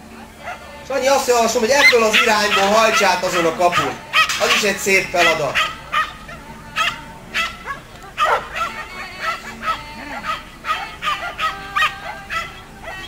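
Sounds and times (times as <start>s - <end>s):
puppy barking: 0.4s - 0.6s, 1.7s - 13.0s.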